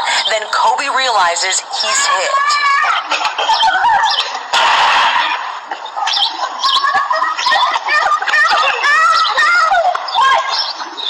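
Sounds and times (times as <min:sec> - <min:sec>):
birds chirping: 0:00.0 - 0:11.0
burst of noise: 0:04.5 - 0:05.8.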